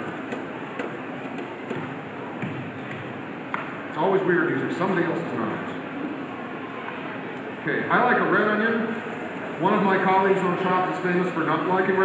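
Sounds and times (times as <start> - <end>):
audience murmur: 0.0 - 11.6.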